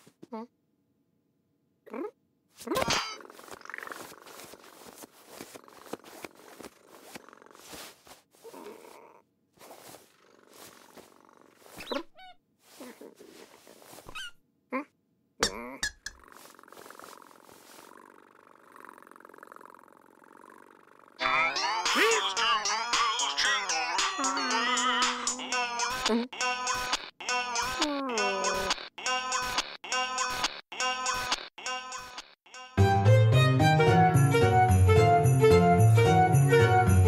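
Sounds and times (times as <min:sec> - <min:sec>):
cartoon cat purring: 0:01.8 - 0:14.9, 0:15.5 - 0:32.2
squeaky chirps: 0:11.6 - 0:12.4, 0:14.0 - 0:14.4.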